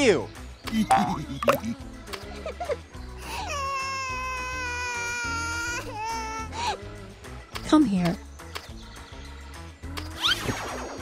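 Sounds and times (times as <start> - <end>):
background music with low beat: 0.7 - 1.8
child crying: 3.2 - 6.8.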